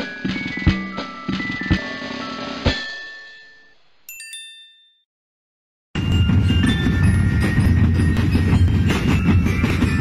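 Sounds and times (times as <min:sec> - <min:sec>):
bell-like ringing tones: 0:00.0 - 0:05.1
rhythmic low hits: 0:06.0 - 0:10.0.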